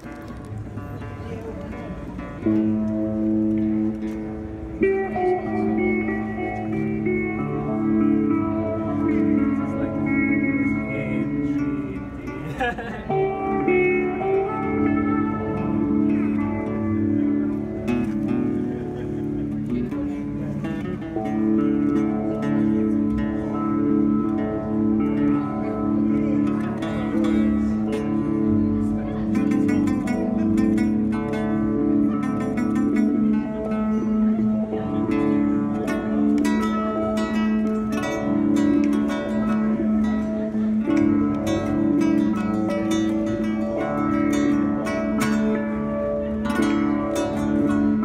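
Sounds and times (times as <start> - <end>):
acoustic guitar playing: 0.0 - 48.0.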